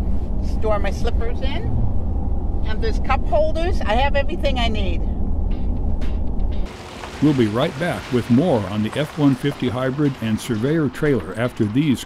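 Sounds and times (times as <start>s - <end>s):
road noise inside moving truck: 0.0s - 12.0s.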